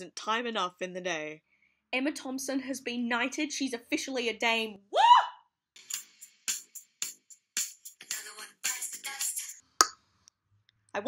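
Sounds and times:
woman cheering: 4.9s - 5.4s
sharp percussion music: 5.8s - 8.8s.

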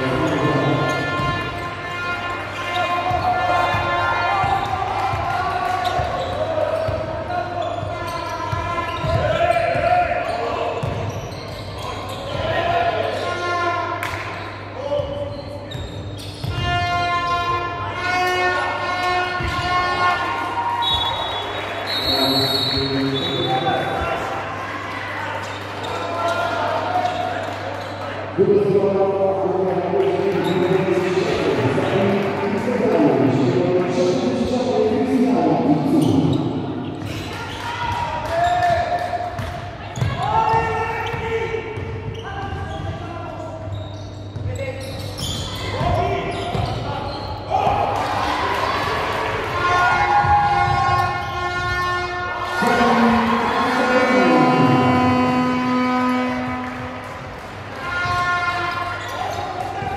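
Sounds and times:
players and spectators shouting: 0.0s - 11.2s, 16.5s - 27.6s, 45.6s - 59.9s
referee's whistle: 20.8s - 23.8s.

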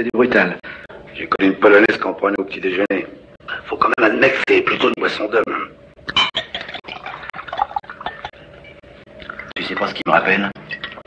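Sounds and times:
liquid trickling and dripping: 9.1s - 10.0s.

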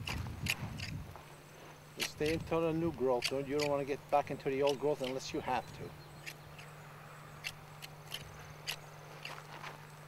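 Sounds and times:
shearing knife chopping branches: 0.0s - 10.0s.

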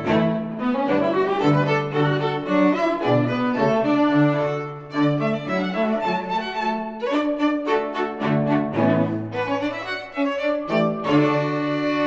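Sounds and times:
string quartet playing: 0.0s - 12.0s.

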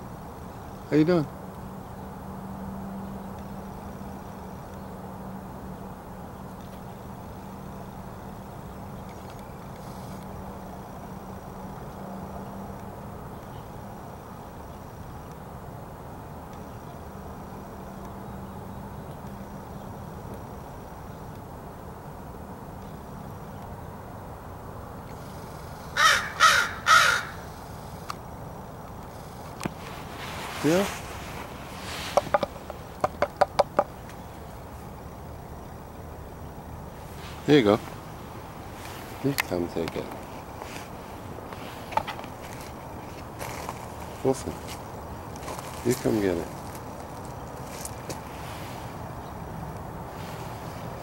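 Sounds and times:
crow cawing: 26.0s - 27.5s.

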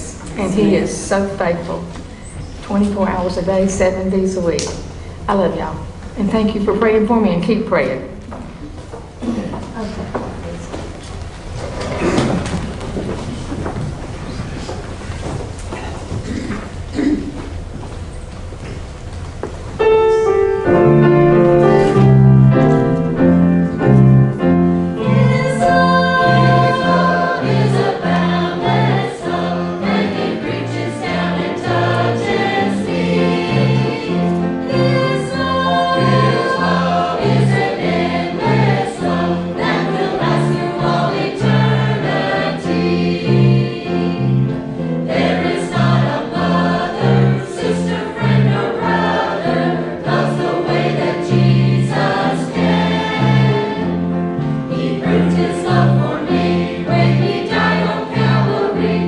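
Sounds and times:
choir singing a hymn: 19.8s - 59.0s.

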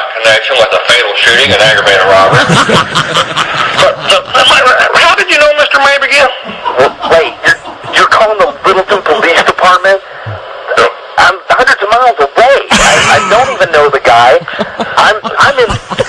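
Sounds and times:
men talking on telephone call: 0.0s - 16.0s.

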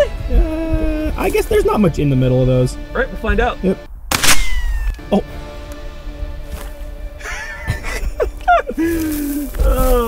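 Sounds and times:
rifle shot: 4.1s - 5.0s.

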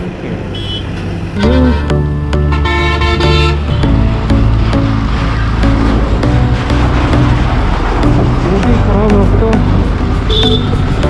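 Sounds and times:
bus passing: 0.0s - 11.0s
road traffic noise: 0.0s - 11.0s
multi-tone vehicle horn: 0.5s - 3.9s, 10.3s - 10.9s
background music: 1.4s - 11.0s.

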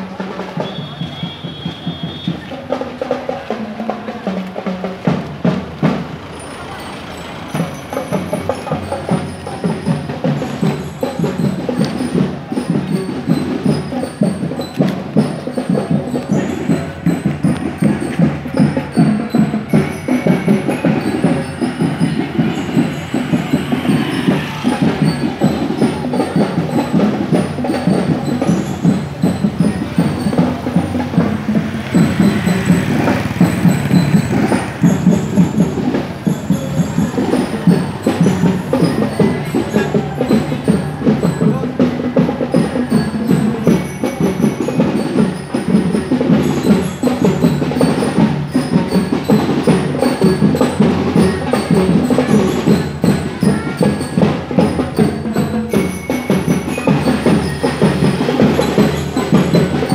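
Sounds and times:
marching drum beat: 0.0s - 59.9s.

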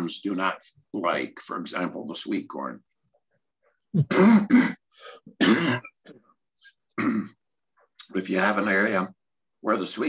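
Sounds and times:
man clearing his throat: 4.0s - 6.0s, 7.0s - 7.4s.

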